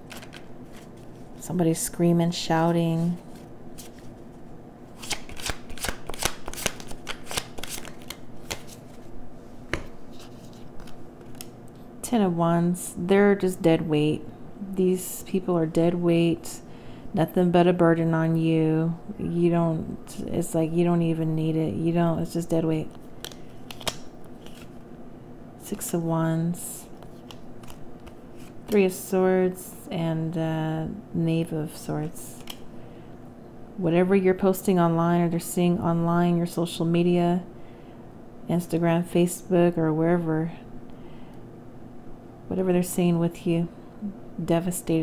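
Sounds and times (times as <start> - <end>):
cards being shuffled: 0.0 - 1.2, 3.0 - 4.3, 5.0 - 9.1, 9.7 - 11.6, 23.2 - 24.8, 27.0 - 28.7, 32.3 - 32.7.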